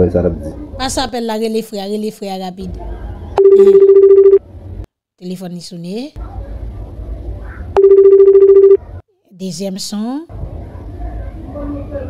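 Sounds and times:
telephone ringing: 3.4s - 4.4s, 7.8s - 8.8s.

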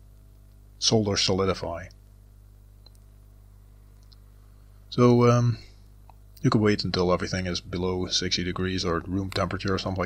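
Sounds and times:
cooling fan humming: 0.0s - 10.0s.

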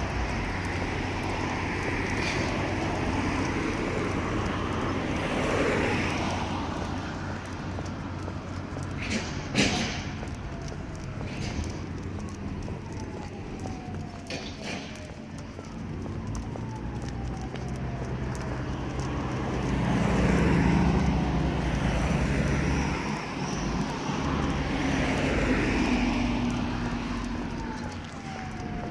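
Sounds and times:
cars passing: 0.0s - 28.9s.

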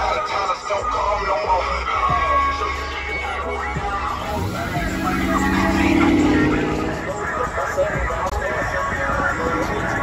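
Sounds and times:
car engine revving: 3.9s - 8.3s.

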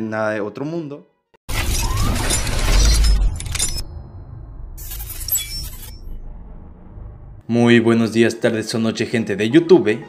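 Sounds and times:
loud shattering crash: 1.5s - 7.4s
deep bass rumble: 3.1s - 7.6s.

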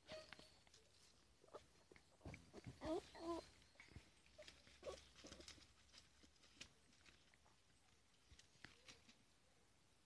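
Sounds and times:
puppy whining yips: 0.0s - 0.6s, 2.5s - 3.6s
paws scratching: 0.7s - 9.3s.

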